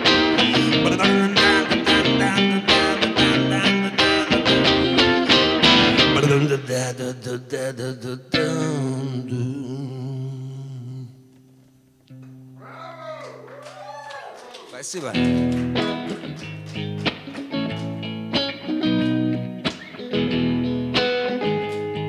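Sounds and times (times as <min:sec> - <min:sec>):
electric guitar chords: 0:00.0 - 0:07.4, 0:08.0 - 0:12.6, 0:15.1 - 0:22.0.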